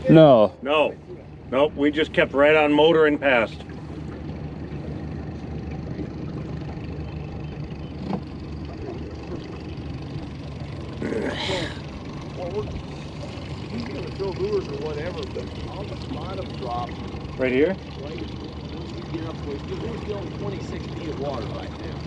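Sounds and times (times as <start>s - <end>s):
outboard motor droning: 0.0s - 22.0s.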